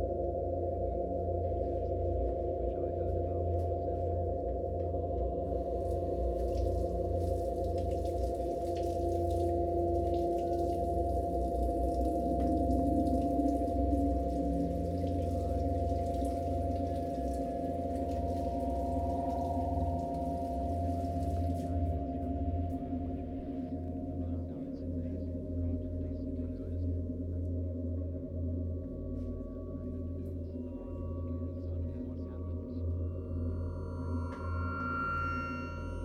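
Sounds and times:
sine wave drone chord: 0.0s - 36.0s
faint higher tone: 28.8s - 36.0s.

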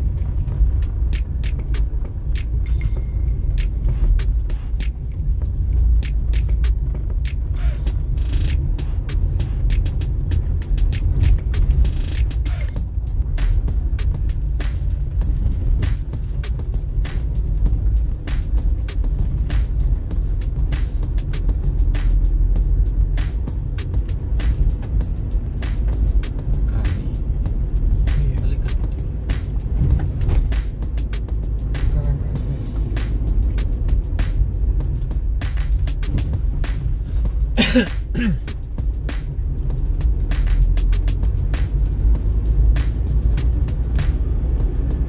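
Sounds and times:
car cabin rumble: 0.0s - 45.0s
irregular ticks and taps: 0.0s - 45.0s
music: 0.0s - 45.0s.

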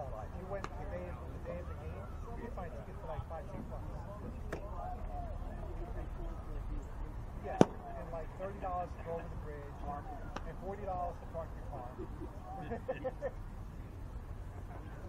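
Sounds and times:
distant voices and chatter: 0.0s - 15.0s
baseball smacking into mitt: 7.6s - 7.8s.

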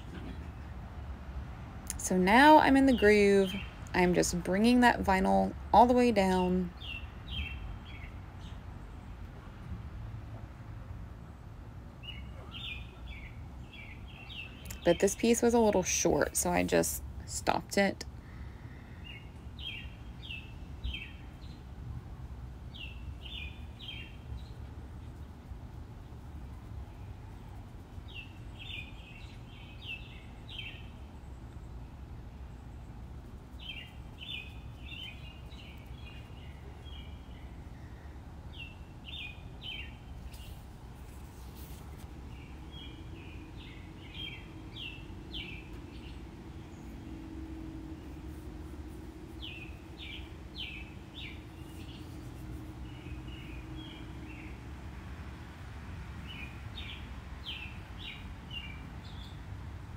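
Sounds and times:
low room hum: 0.0s - 59.9s
bird chirping: 6.2s - 9.1s, 12.0s - 15.4s, 19.0s - 21.6s, 22.7s - 25.4s, 26.8s - 31.8s, 32.4s - 54.7s.

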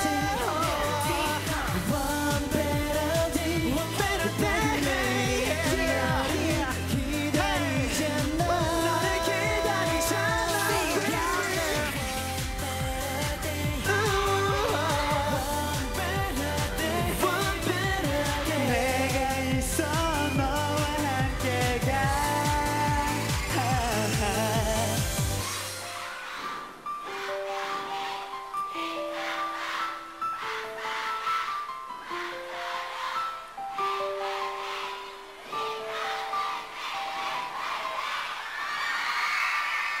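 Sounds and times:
men singing pop song: 0.0s - 25.4s
pop backing track with beat: 0.0s - 25.9s
audience screaming and cheering: 0.0s - 40.0s.

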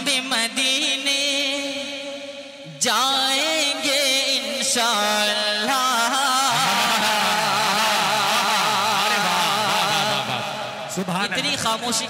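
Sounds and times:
man singing into a microphone: 0.0s - 12.0s.

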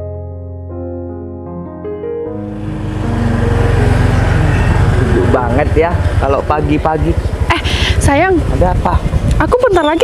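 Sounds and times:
motor scooter engine running: 2.4s - 10.0s.

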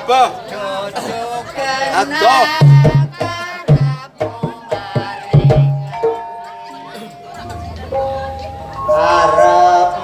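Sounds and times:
gamelan held tones: 5.2s - 10.0s.

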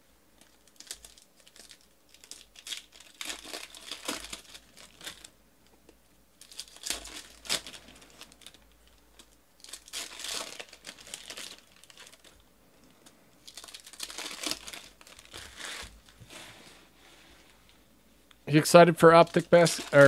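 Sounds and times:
foil wrappers crinkling and tearing: 0.4s - 5.3s, 6.4s - 12.4s, 13.0s - 16.2s, 18.9s - 20.0s.

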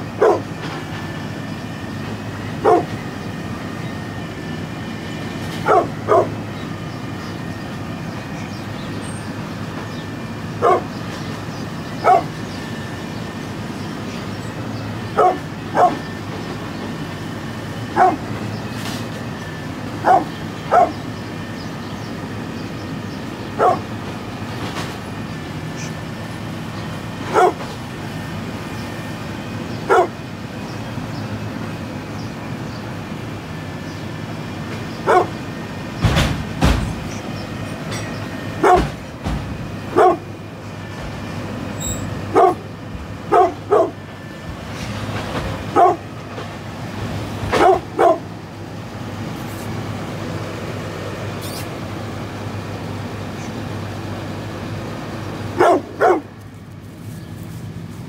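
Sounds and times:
dog barking: 0.2s - 0.5s, 2.6s - 3.0s, 5.6s - 6.4s, 10.6s - 11.0s, 12.0s - 12.4s, 15.1s - 16.1s, 17.9s - 18.3s, 20.0s - 21.0s, 23.6s - 23.9s, 27.3s - 27.6s, 29.8s - 30.2s, 35.0s - 35.4s, 38.6s - 39.0s, 39.9s - 40.3s, 42.3s - 42.7s, 43.3s - 44.0s, 45.7s - 46.1s, 47.5s - 48.3s, 55.6s - 56.3s.

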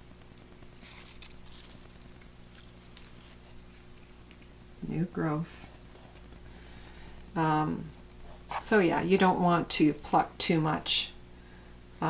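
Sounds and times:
rustling of leaves: 0.0s - 4.4s
steady low hum: 0.0s - 12.0s.

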